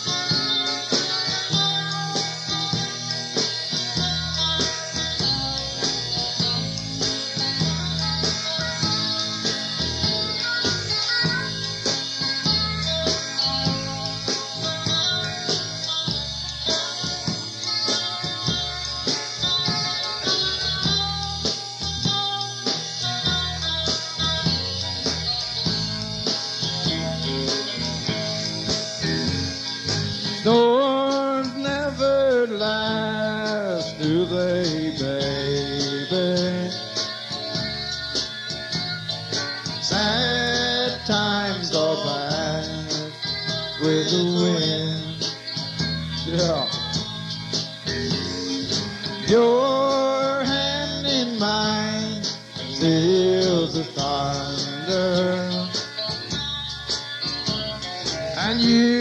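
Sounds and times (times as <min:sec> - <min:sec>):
bending lead guitar line: 0:00.0 - 0:59.0
country-rock band playing: 0:00.0 - 0:59.0.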